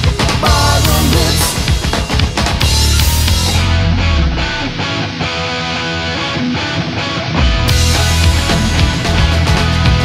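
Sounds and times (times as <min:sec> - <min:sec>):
electric guitar playing: 0:00.0 - 0:10.0.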